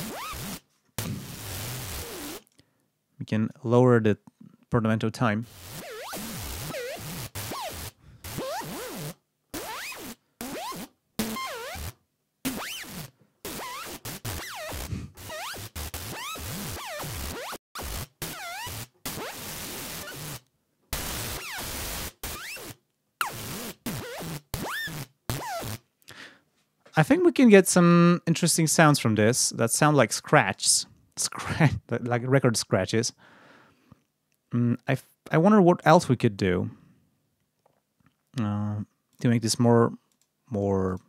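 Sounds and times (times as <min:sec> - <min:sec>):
synthesized record scratch bursts: 0:00.0 - 0:02.4, 0:05.4 - 0:25.8.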